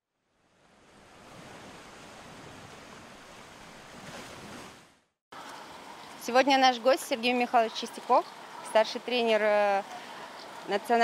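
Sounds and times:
sea surf washing on beach: 0.6 - 11.0.

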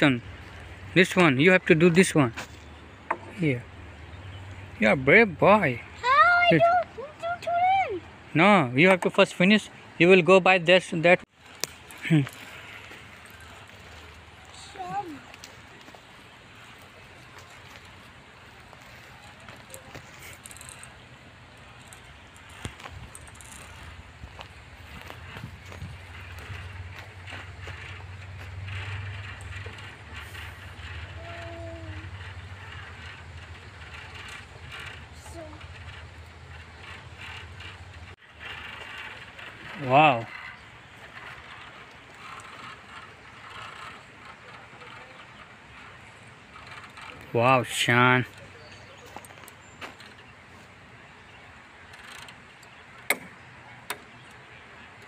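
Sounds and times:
outdoor background: 0.0 - 55.0
carabiners clinking on steel cable: 19.0 - 50.2.

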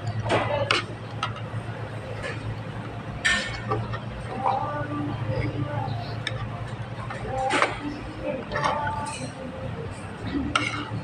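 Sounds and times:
low background hum: 0.0 - 11.0
cutlery scraping on a plate: 10.5 - 11.0.

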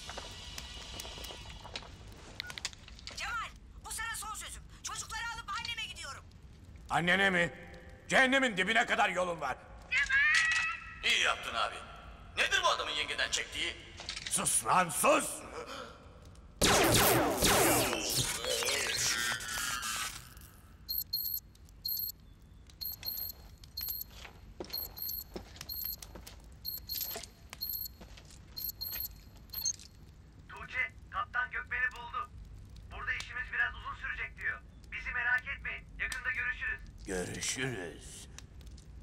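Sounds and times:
high electronic beeps and clicks: 20.9 - 22.2, 22.8 - 24.1, 24.8 - 26.0, 26.7 - 27.9, 28.6 - 29.8.

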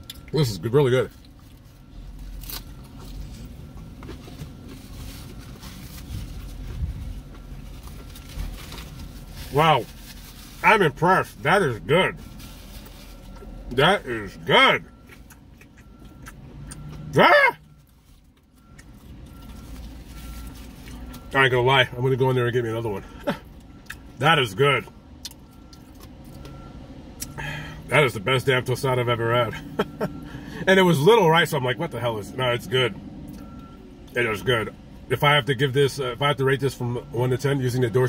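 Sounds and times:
low vehicle rumble: 0.0 - 38.0
man chewing: 1.1 - 9.1, 15.0 - 17.1, 25.2 - 26.5
rustling and handling noises: 1.1 - 10.7, 12.1 - 13.6.

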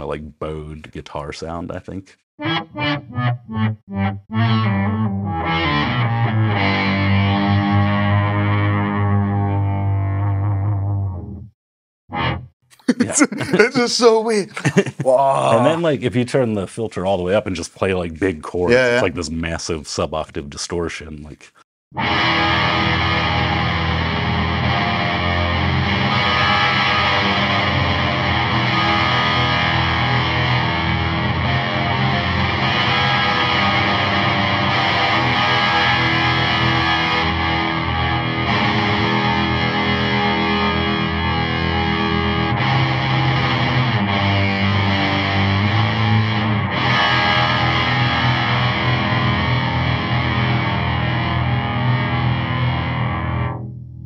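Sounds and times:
fuzzy distorted electric guitar chords: 2.4 - 11.5, 12.1 - 12.5, 21.9 - 54.0.

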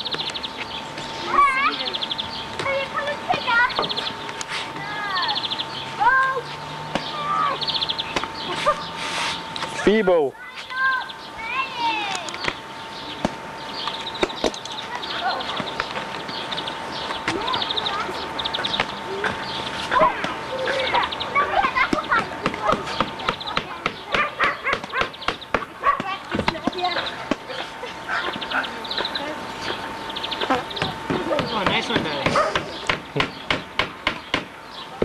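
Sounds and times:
steady high tone: 0.0 - 32.9
bird trills: 0.0 - 35.0
children calling out: 1.2 - 9.0, 9.6 - 12.5, 14.3 - 29.4
scattered clicks: 12.0 - 12.6, 13.2 - 17.4.

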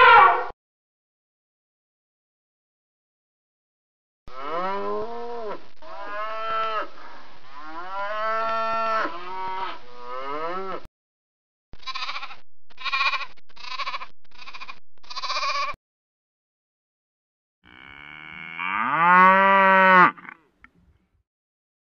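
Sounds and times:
goat bleating: 11.8 - 15.8
cow mooing: 17.6 - 20.5.

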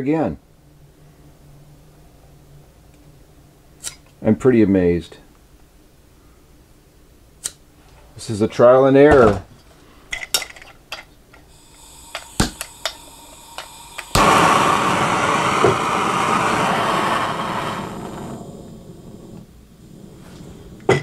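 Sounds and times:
gas flame hissing: 11.4 - 21.0
torch igniter clicks: 11.6 - 18.8.

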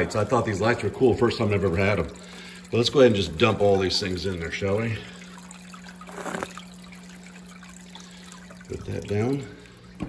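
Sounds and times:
water running in tank: 0.0 - 10.0.

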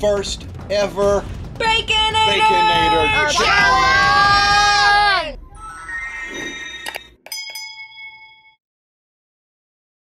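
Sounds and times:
bell-like chime: 5.6 - 8.6.

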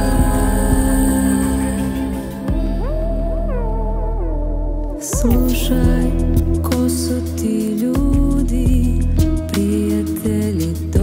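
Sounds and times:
deep bass: 0.0 - 11.0
trip-hop instrumental music: 0.0 - 11.0.

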